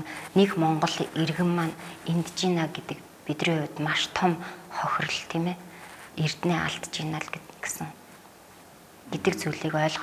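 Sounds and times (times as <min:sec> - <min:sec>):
woman speaking: 0:00.0 - 0:08.0, 0:09.1 - 0:10.0.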